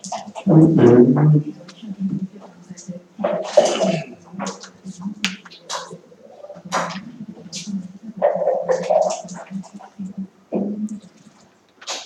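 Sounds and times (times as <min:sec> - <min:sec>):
low steady hum: 0:00.0 - 0:11.8.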